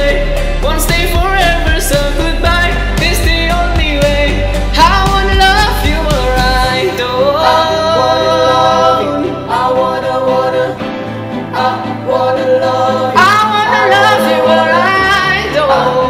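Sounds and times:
man singing pop ballad: 0.0 - 10.8, 13.1 - 16.0
instrumental backing with bass: 0.0 - 16.0.

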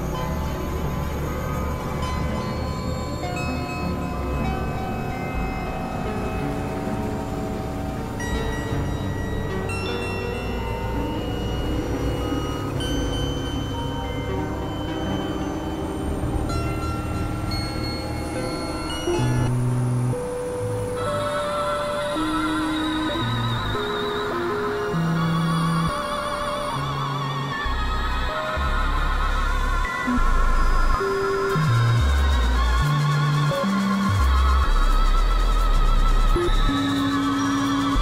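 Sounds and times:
synthesizer drone music: 0.0 - 38.0.

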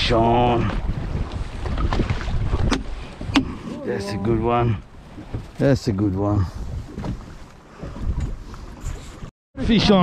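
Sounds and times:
wind buffeting microphone: 0.0 - 9.3.

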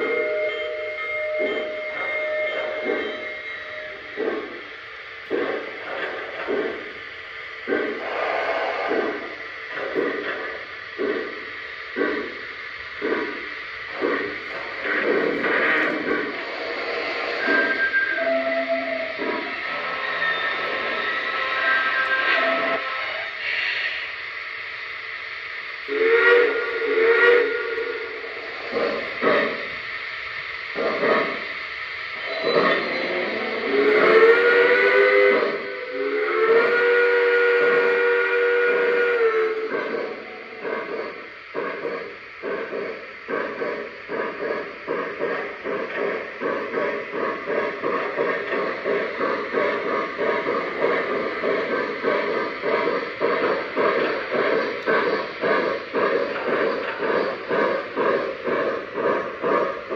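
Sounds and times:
electronic steam whistle toots: 0.0 - 4.6, 7.7 - 10.4, 14.0 - 24.2, 25.9 - 29.8, 31.0 - 57.6
rhythmic steam locomotive chuffing: 0.0 - 59.9.

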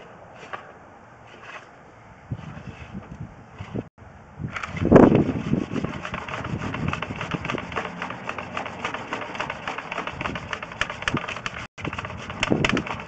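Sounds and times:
push rod clicking and rattling: 7.0 - 13.0.

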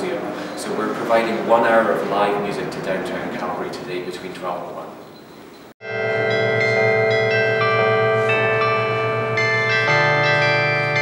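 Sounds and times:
carillon bells playing a tune: 5.8 - 11.0
low bell: 5.8 - 11.0.

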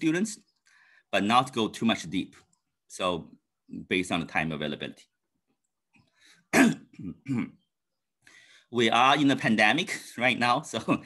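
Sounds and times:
man clearing throat: 6.5 - 7.6.

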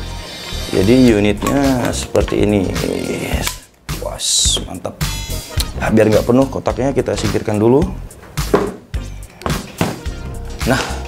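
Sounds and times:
quiet background music: 0.0 - 11.0
knocks handling cardboard box: 8.5 - 8.8.

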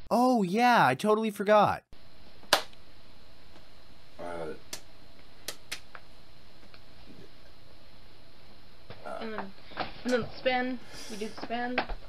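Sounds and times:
faint room hiss: 2.0 - 12.0.

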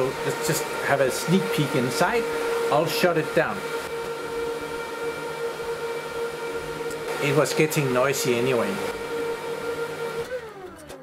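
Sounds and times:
server cooling fans whining: 0.0 - 11.0.

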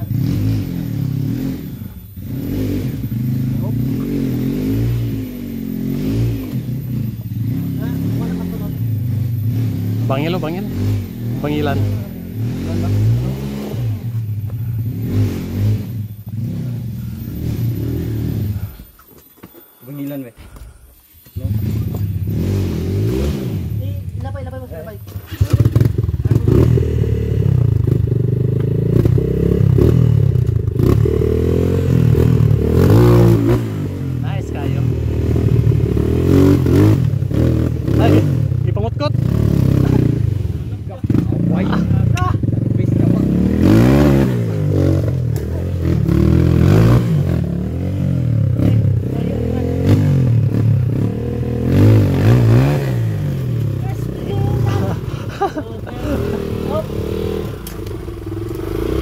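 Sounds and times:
dirt bike engine revving: 0.0 - 19.0, 21.2 - 59.0.

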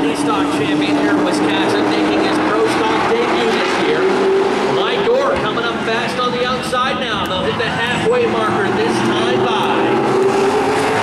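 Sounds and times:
race car engines droning: 0.0 - 11.0.

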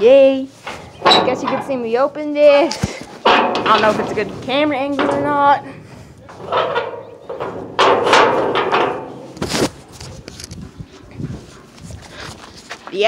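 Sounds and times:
steel door scraping and rattling: 0.5 - 10.7.

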